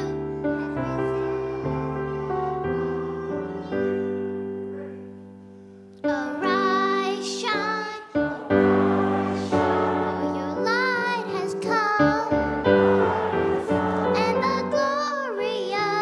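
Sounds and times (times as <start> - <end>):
child singing into a microphone: 0.0 - 4.1, 6.0 - 8.2, 10.1 - 12.4, 14.2 - 16.0
piano accompaniment: 0.0 - 16.0
piano chord: 8.2 - 15.5.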